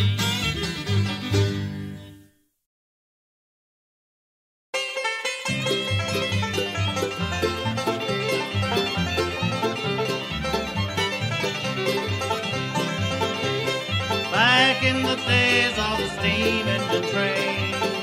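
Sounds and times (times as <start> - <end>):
fiddle: 0.0 - 2.1, 4.8 - 18.0
banjo: 0.0 - 2.2, 4.8 - 18.0
guitar: 0.0 - 2.4, 4.8 - 18.0
bass line: 5.5 - 18.0
person singing: 14.1 - 18.0.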